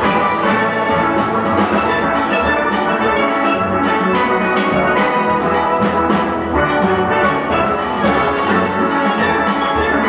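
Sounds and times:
steel band playing: 0.0s - 10.0s.

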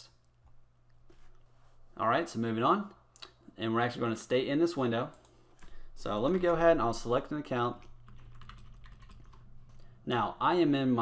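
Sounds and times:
low steady hum: 0.0s - 11.0s
keyboard keystrokes and clicks: 7.8s - 9.4s.

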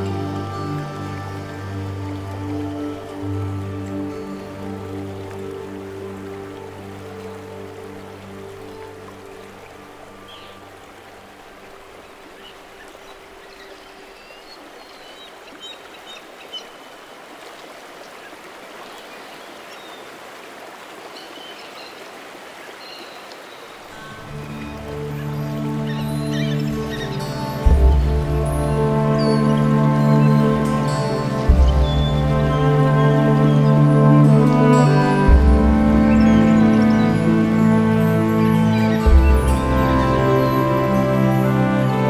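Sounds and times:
held chord-like music: 0.0s - 14.0s, 23.9s - 42.0s
soft new-age music: 0.0s - 20.3s, 20.9s - 42.0s
flowing stream water: 0.0s - 42.0s.

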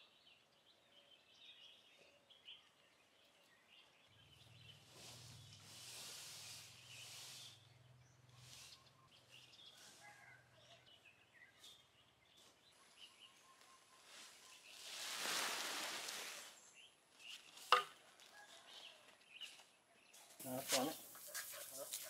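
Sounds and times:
faint bird chirps: 0.0s - 15.5s
plastic sheet rustling and scraping: 14.0s - 16.7s.

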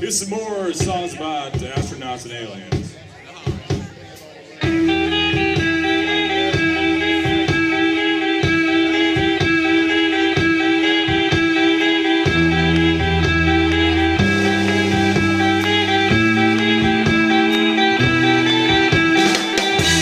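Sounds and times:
drum kit beat: 0.0s - 20.0s
bass line: 4.6s - 20.0s.

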